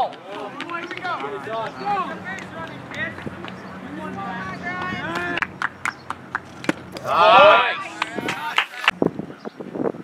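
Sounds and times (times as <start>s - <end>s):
hand claps: 2.4s - 3.6s, 4.8s - 7.1s, 8.0s - 9.0s
people calling out: 3.8s - 5.6s, 7.0s - 8.9s.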